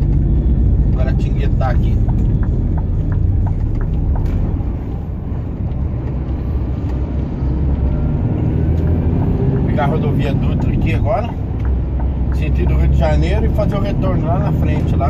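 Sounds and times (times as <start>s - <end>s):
road noise: 0.0s - 15.0s
truck engine droning: 0.0s - 15.0s.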